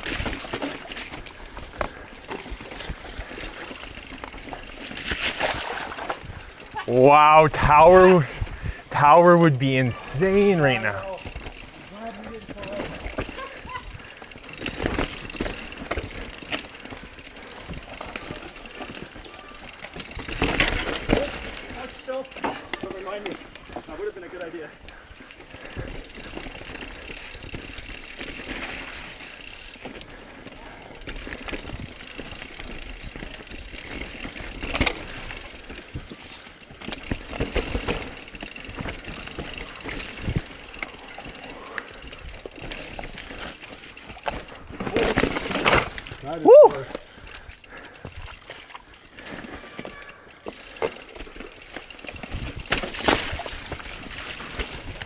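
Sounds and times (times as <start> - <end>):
bike rattling and knocking: 0.0 - 6.9, 10.3 - 55.0
bike tyres rolling over dirt: 0.0 - 55.0.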